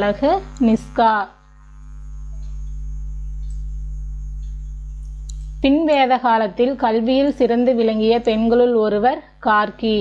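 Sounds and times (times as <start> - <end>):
woman speaking: 0.0 - 1.4, 5.6 - 10.0
low electrical hum: 0.0 - 10.0.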